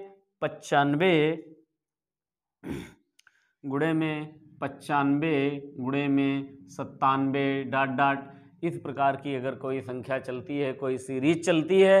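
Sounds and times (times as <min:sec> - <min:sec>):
short breath: 0:02.6 - 0:03.6
man speaking: 0:03.6 - 0:12.0.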